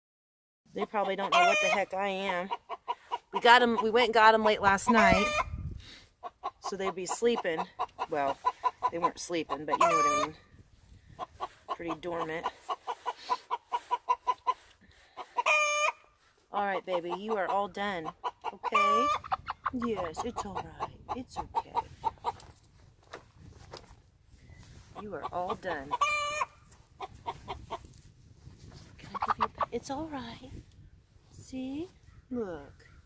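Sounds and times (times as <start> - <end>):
hen clucking: 0.7 - 22.6, 24.8 - 28.0, 29.0 - 30.3.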